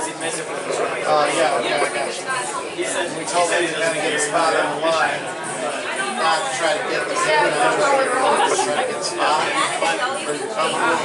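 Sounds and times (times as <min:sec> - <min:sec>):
voices talking over one another: 0:07.1 - 0:11.0.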